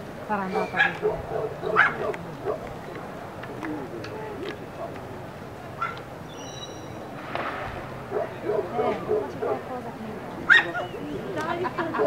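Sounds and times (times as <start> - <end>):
people talking: 0.2 - 5.2, 8.2 - 12.0.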